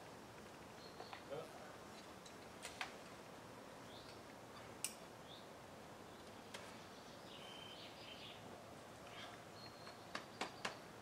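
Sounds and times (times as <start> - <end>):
birds chirping: 0.7 - 1.7, 3.8 - 8.5, 9.1 - 11.0.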